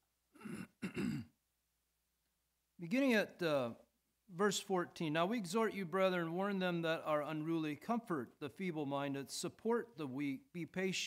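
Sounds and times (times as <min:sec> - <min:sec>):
man clearing his throat: 0:00.4 - 0:01.4.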